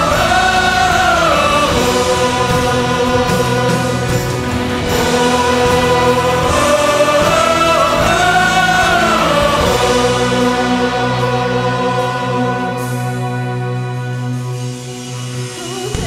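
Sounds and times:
choir and orchestra worship music: 0.0 - 16.0.

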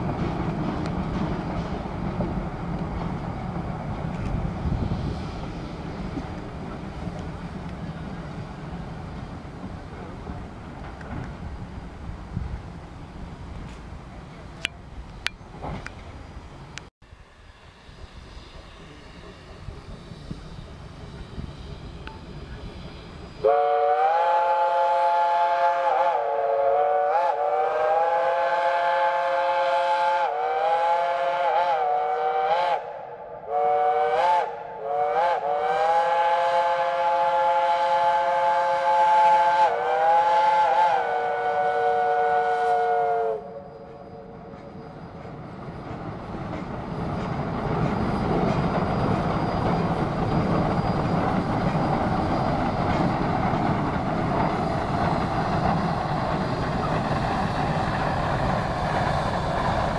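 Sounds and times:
steam locomotive working noise: 0.0 - 59.9
steam locomotive chime whistle: 17.3 - 32.9, 33.5 - 53.6.

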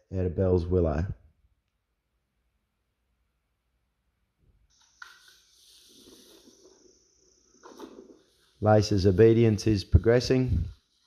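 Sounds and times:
high insect trill: 4.7 - 11.0.

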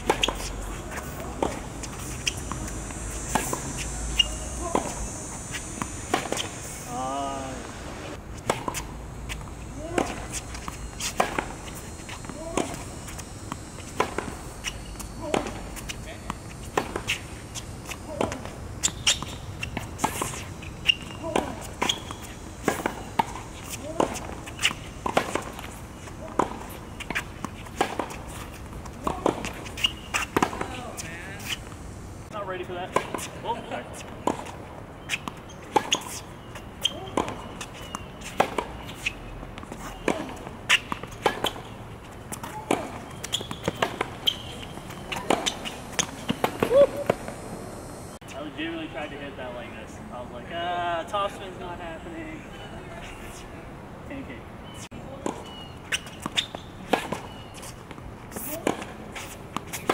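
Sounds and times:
tennis ball bouncing on court: 0.0 - 7.6, 8.4 - 31.8, 32.8 - 47.4, 54.6 - 59.9
tennis ball pops off racket: 29.0 - 30.8.

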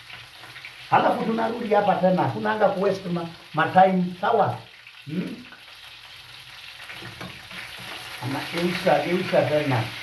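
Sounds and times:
chicken sizzling in frying pan: 0.0 - 10.0
man speaking: 0.9 - 5.6, 8.2 - 10.0
spoon scraping pan: 6.9 - 8.9.

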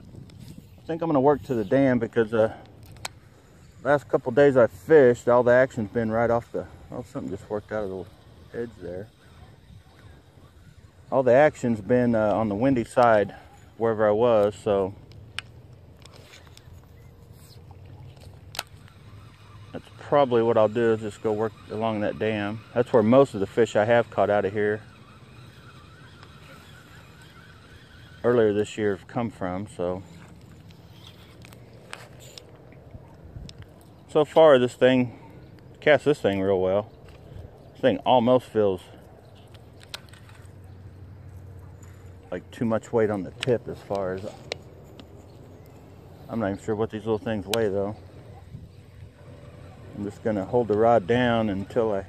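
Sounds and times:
low wind noise: 0.0 - 13.9, 30.0 - 34.2, 38.8 - 52.0.

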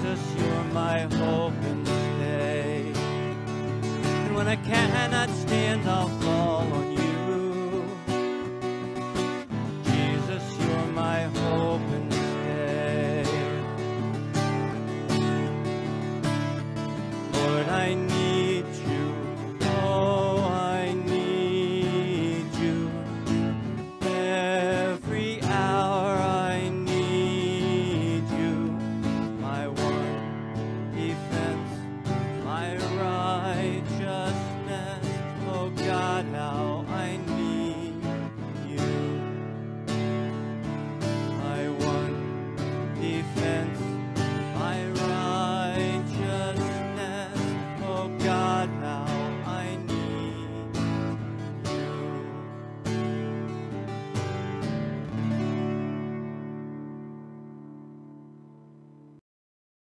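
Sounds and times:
acoustic guitar strumming: 0.0 - 59.2.

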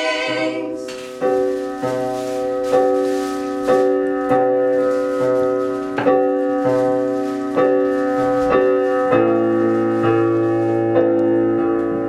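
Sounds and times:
piano chords ringing: 0.0 - 12.0.

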